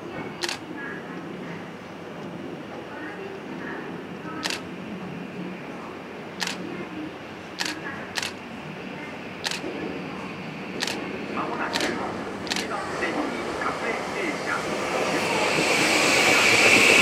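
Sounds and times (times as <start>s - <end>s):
camera shutters clicking: 7.6s - 8.4s, 9.4s - 9.6s, 12.5s - 12.7s.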